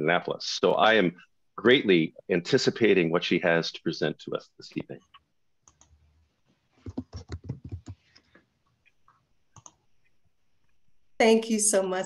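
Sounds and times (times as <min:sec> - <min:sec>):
faint clicks: 0:04.9 - 0:06.0, 0:06.9 - 0:10.2.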